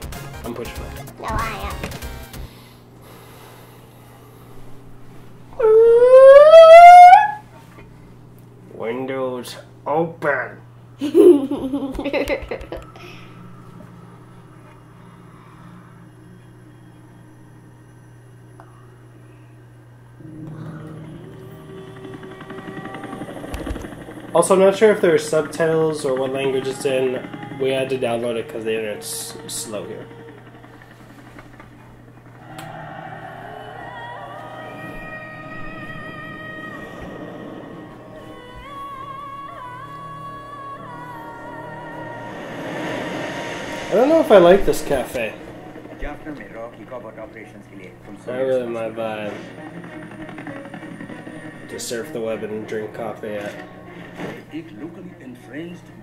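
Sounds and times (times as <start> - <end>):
droning music tones: 0.0 - 56.0
girl's rising oooh: 5.6 - 7.4, 32.3 - 44.0.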